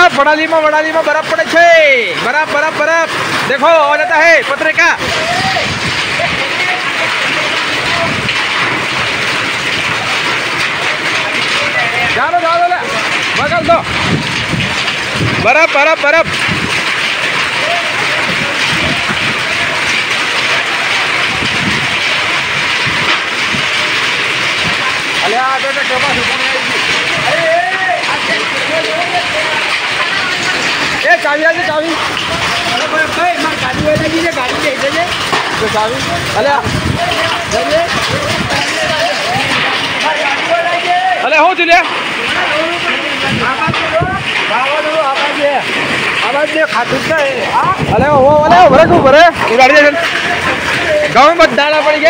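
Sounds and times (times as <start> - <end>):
heavy rain pouring: 0.0 - 52.0.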